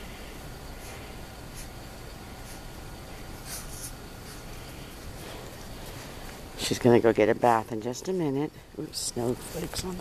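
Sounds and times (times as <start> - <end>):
background noise: 0.0 - 10.0.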